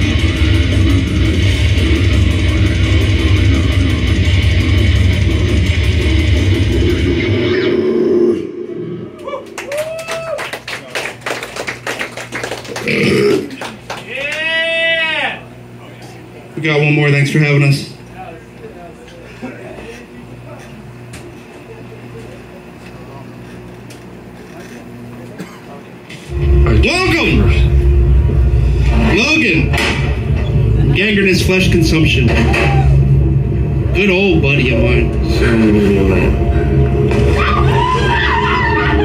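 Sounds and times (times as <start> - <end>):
death metal guitar and drums: 0.0 - 8.6, 26.3 - 39.0
crowd clapping: 9.2 - 14.7
amplifier electrical hum: 13.0 - 39.0
crowd chatter: 18.0 - 26.6
crowd shouting: 37.2 - 39.0.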